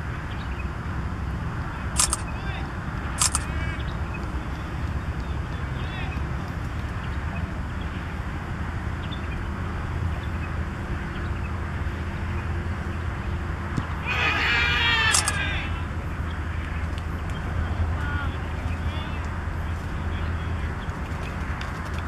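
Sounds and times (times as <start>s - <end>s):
sharp click: 2.0s - 2.3s, 3.2s - 3.5s, 15.1s - 15.4s.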